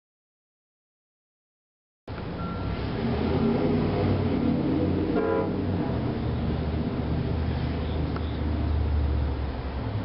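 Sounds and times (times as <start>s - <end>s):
horn toot: 5.1s - 5.9s.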